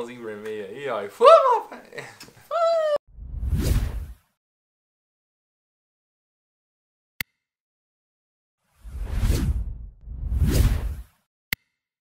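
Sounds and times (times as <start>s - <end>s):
whoosh sound effects: 3.2s - 4.2s, 8.8s - 11.2s.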